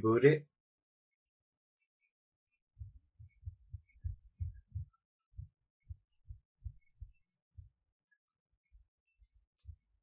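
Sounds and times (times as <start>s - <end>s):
low muffled thumps: 2.8s - 7.8s.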